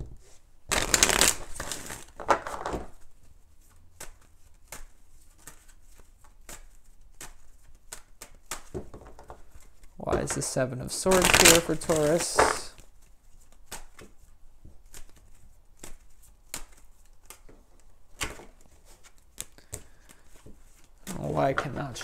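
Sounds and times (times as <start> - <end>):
cards shuffled by hand: 0.2 - 22.0.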